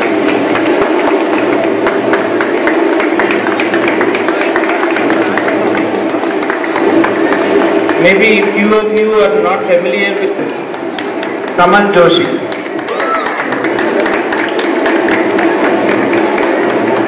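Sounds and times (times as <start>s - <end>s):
audience clapping: 0.0s - 17.0s
crowd murmur: 0.0s - 17.0s.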